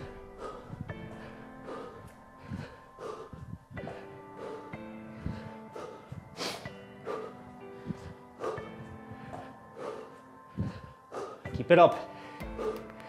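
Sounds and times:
background music with sustained notes: 0:00.0 - 0:13.0
person breathing hard: 0:00.0 - 0:13.0.

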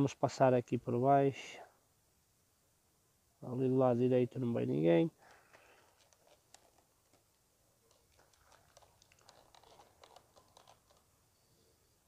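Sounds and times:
small clicks and handling noises: 0:05.2 - 0:11.1.

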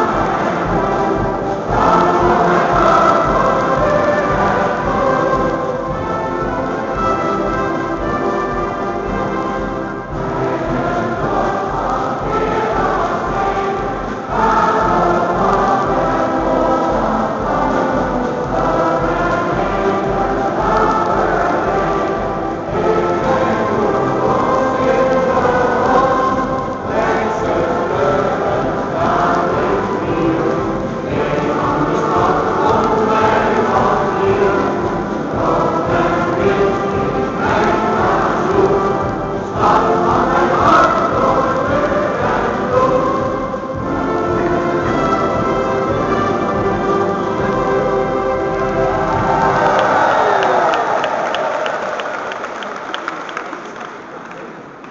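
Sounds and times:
large choir singing a chorale: 0:00.0 - 0:52.5
crowd applauding: 0:47.6 - 0:54.9.

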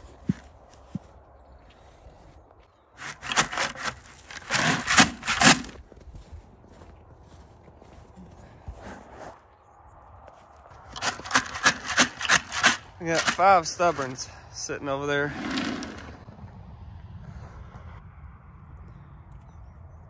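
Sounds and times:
footsteps crunching on snow: 0:00.0 - 0:14.8.

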